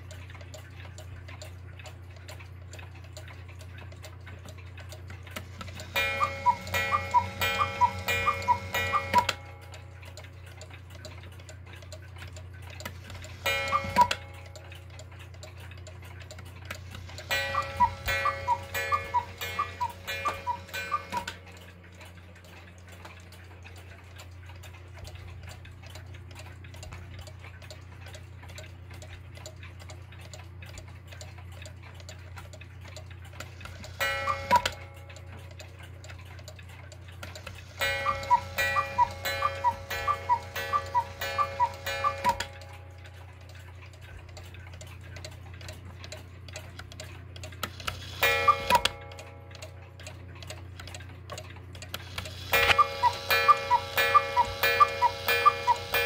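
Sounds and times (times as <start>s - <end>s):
clock ticking: 0.0s - 56.0s
two-note cuckoo whistles: 6.0s - 9.5s, 13.6s - 14.2s, 17.3s - 21.4s, 34.1s - 34.9s, 37.8s - 42.6s, 48.3s - 49.2s, 52.6s - 56.0s.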